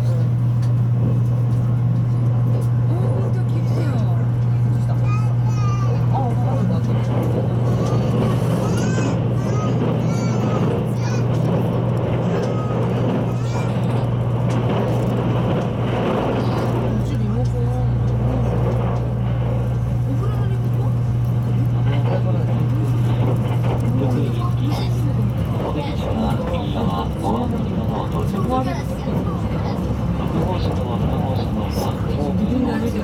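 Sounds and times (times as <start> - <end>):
passengers chattering: 0.0 - 33.0
train running rumble: 0.0 - 33.0.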